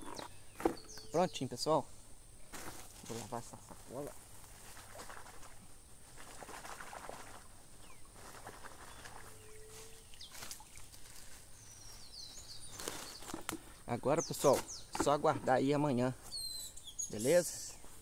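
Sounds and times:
bird chirps: 0.0 - 1.6, 11.5 - 15.1, 16.2 - 18.0
water splashing: 4.7 - 7.6.

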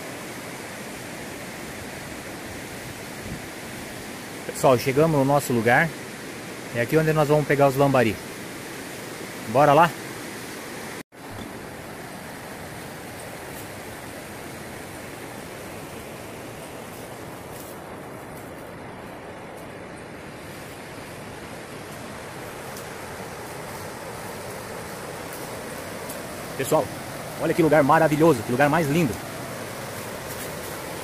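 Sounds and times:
river rushing over rocks: 0.0 - 31.0.

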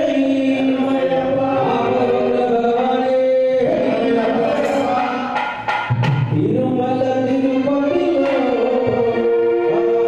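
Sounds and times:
men singing in chant-like style: 0.0 - 5.6, 6.3 - 10.0.

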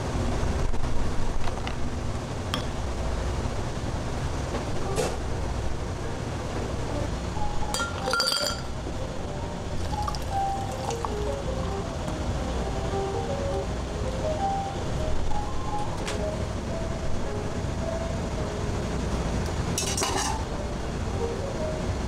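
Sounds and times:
low steady rumble: 0.0 - 22.0
background music: 6.0 - 22.0
glass clinking: 7.7 - 8.8, 9.8 - 11.3.

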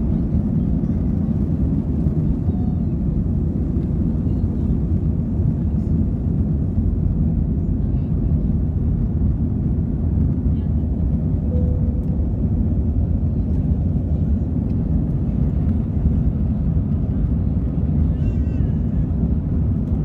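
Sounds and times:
airplane cabin engine roar: 0.0 - 20.0.

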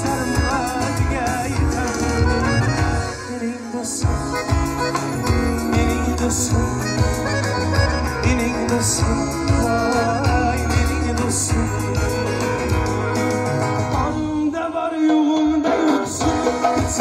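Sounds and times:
keyboard lead: 0.0 - 17.0
live band music: 0.0 - 17.0.

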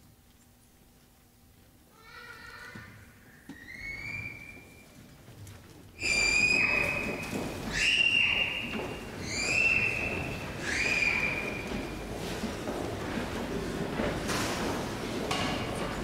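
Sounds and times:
high whistle-like tones: 3.5 - 4.9, 6.0 - 11.8.

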